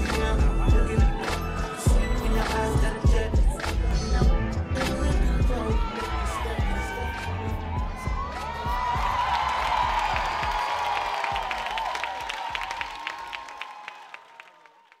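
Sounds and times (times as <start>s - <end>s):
hip-hop dance music: 0.0s - 13.0s
audience cheering and whooping: 0.0s - 15.0s
applause: 7.2s - 15.0s.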